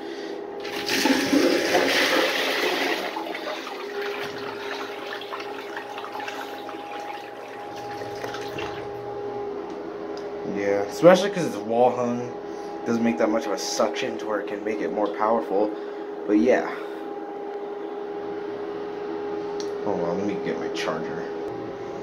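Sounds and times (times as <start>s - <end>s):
toilet flushing: 0.6s - 9.1s.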